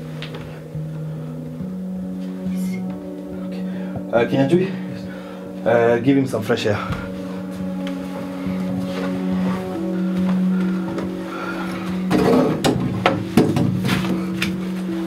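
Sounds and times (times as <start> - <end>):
sustained low music notes: 0.0 - 15.0.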